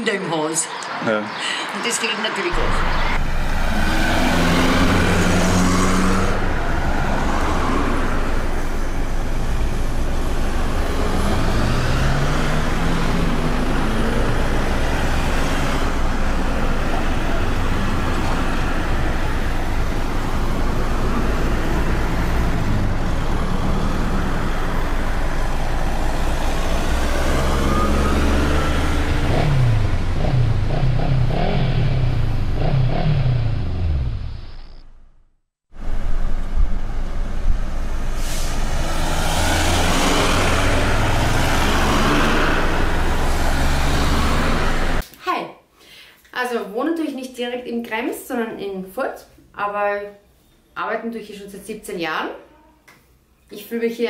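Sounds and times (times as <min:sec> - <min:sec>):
road traffic passing: 0:00.0 - 0:35.1, 0:35.8 - 0:45.0.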